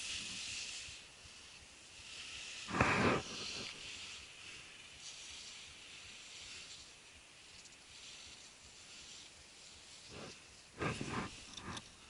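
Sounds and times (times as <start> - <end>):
skis sliding on snow: 0.0 - 12.0
person breathing: 2.5 - 4.7, 10.0 - 12.0.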